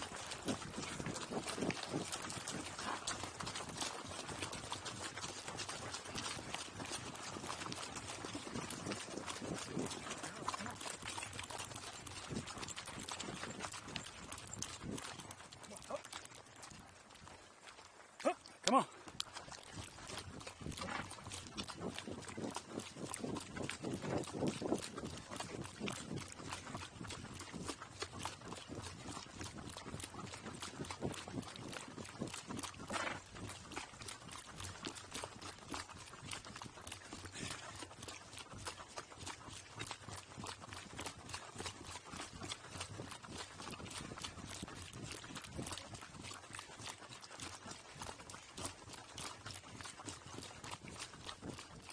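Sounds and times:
hooves crunching on gravel: 0.0 - 51.9.

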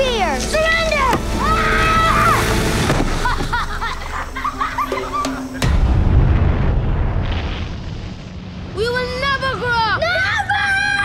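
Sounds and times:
deep boom with low rumble: 5.6 - 8.5.

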